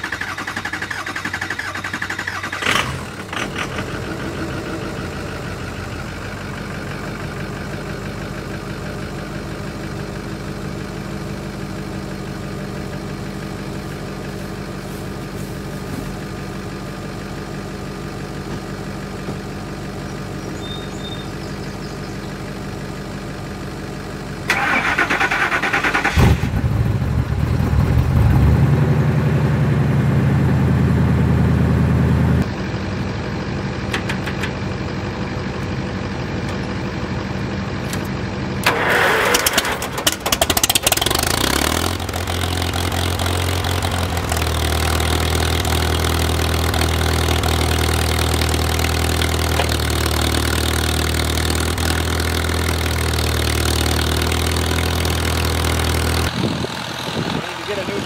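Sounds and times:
pickup truck engine cranking and starting: 0.0s - 10.6s, 24.3s - 29.5s, 37.7s - 58.0s
old tractor engine starting and idling: 0.0s - 58.0s.

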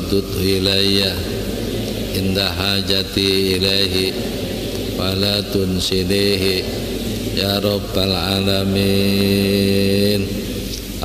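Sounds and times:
man chanting: 0.0s - 11.0s
steady low hum: 0.0s - 11.0s.

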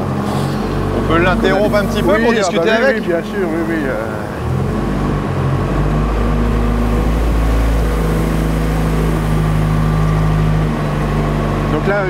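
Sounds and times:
diesel engine at high revs: 0.0s - 12.0s.

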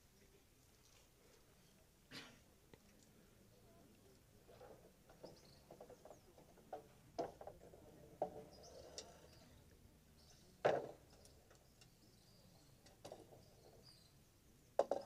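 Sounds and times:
wooden boards knocking and clattering: 5.1s - 8.6s, 10.6s - 11.3s, 12.9s - 13.5s, 14.8s - 15.0s
faint bird chirps: 5.2s - 6.5s, 8.4s - 14.8s.

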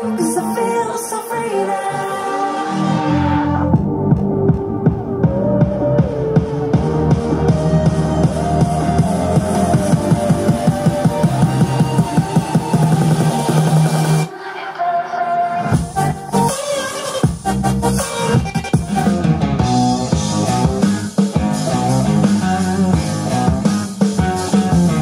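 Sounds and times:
electronic pop music through speakers: 0.0s - 25.0s.

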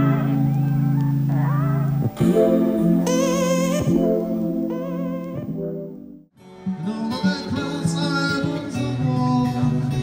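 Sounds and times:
held low chord: 0.0s - 6.3s
wavering melody line: 2.2s - 6.3s.

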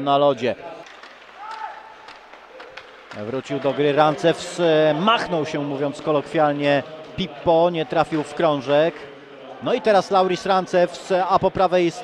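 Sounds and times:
sticks and skates clicking on ice: 0.8s - 4.2s.

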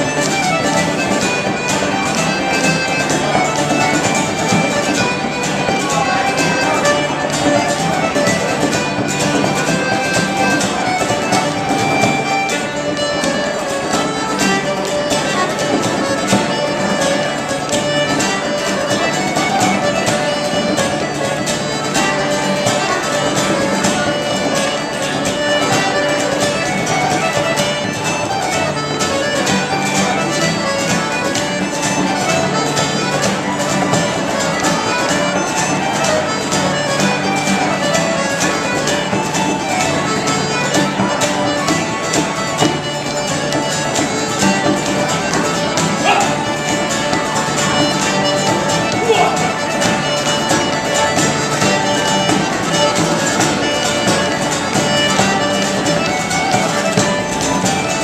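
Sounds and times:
button accordion: 0.0s - 58.0s
mandolin: 0.0s - 58.0s
strummed acoustic guitars: 0.0s - 58.0s.

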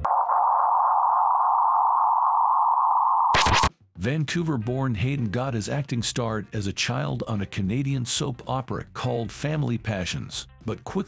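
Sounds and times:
static crackle: 0.0s - 3.7s
steady electronic tone: 0.0s - 3.7s.

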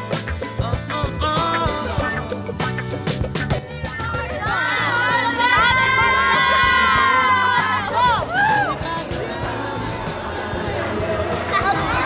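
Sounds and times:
crowd cheering: 3.8s - 12.0s
people whooping: 4.1s - 8.9s.

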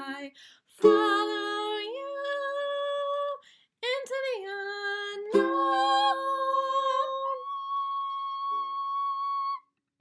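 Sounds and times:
women singing: 0.0s - 9.4s
ukulele chord ringing: 0.8s - 1.6s, 5.3s - 6.4s.

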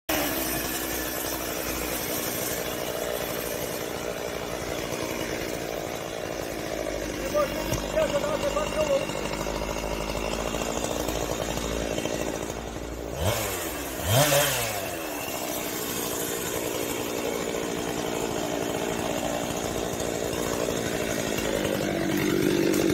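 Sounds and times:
chainsaw idling and revving: 0.1s - 22.9s.

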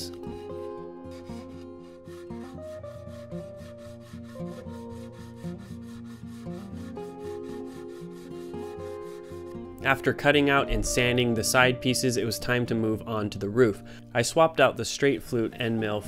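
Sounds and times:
background music with held notes: 0.0s - 16.0s
sandpaper rubbing wood: 0.1s - 9.6s, 15.0s - 16.0s.

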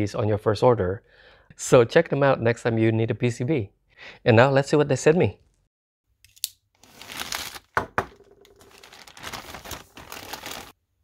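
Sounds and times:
plastic bag being slit: 6.8s - 7.8s, 8.6s - 10.8s
plastic bag crinkling: 6.8s - 10.8s.

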